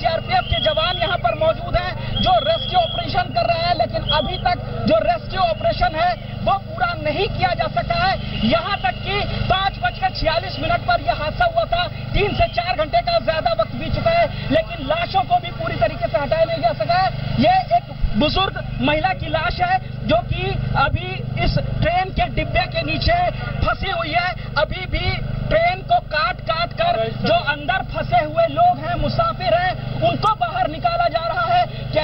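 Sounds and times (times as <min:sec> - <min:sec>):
low hum: 0:00.0 - 0:32.0
man talking into a microphone: 0:00.0 - 0:32.0.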